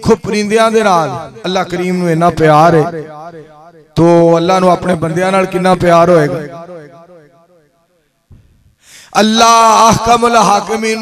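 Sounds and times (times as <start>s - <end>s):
sharp intake of breath: 8.3s - 9.2s.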